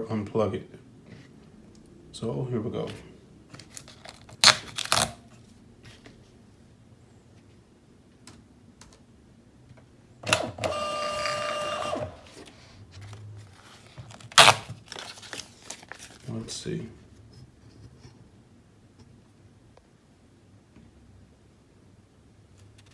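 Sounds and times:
label printer motor whine: 10.2 - 12.4.

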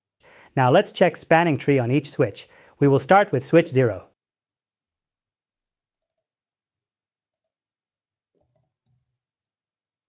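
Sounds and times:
computer mouse clicks: 8.4 - 9.2.

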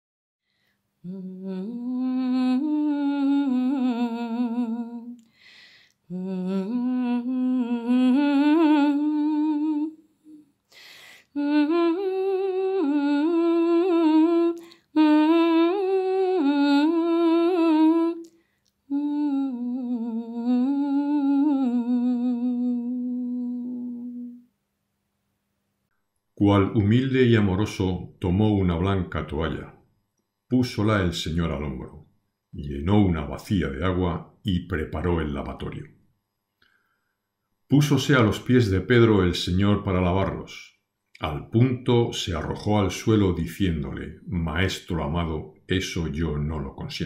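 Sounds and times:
person humming a melody: 1.0 - 5.3, 6.1 - 10.5, 11.2 - 18.3, 18.9 - 24.4.

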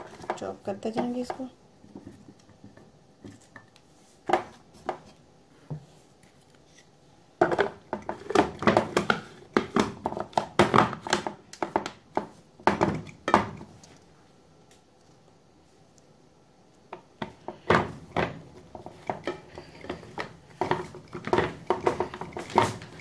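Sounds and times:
plastic knocking and clattering: 7.4 - 13.7, 17.0 - 23.0.

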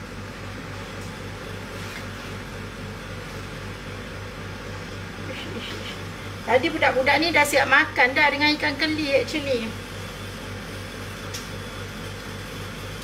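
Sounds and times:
extractor fan humming: 0.0 - 13.0.

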